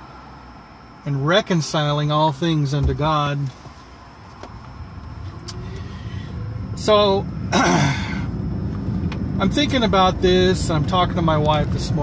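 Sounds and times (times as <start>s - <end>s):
car cabin rumble: 0.8s - 12.0s.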